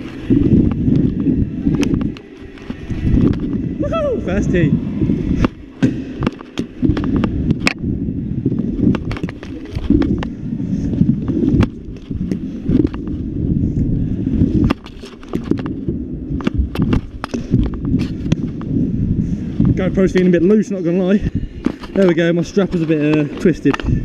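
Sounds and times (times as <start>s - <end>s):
scooter wheels rumbling: 0.0s - 24.0s.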